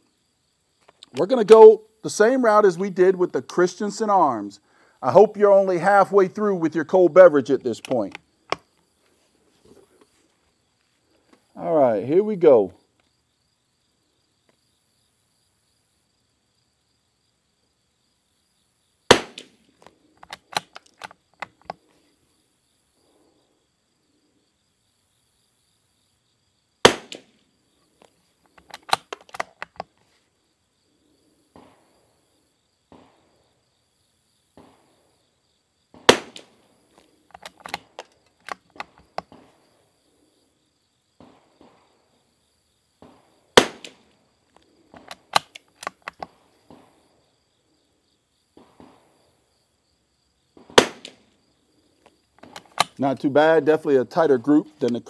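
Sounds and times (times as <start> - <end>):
rifle shots: 19.1 - 19.6, 26.8 - 27.3, 36.0 - 36.6, 43.0 - 44.1, 50.6 - 51.2.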